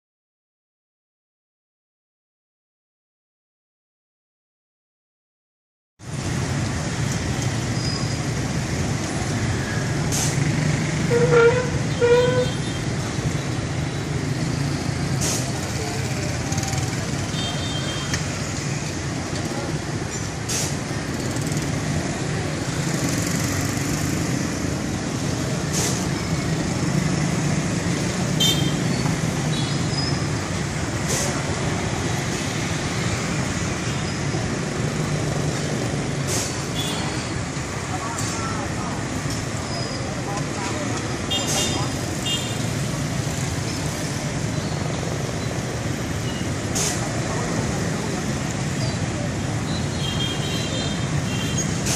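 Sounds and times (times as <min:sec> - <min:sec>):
motorbike and car engines passing: 0:06.1 - 0:51.9.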